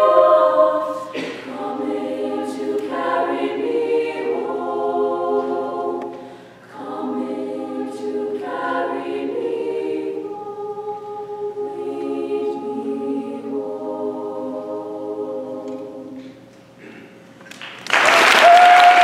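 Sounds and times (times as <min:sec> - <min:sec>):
girls' choir singing: 0:00.0 - 0:16.5.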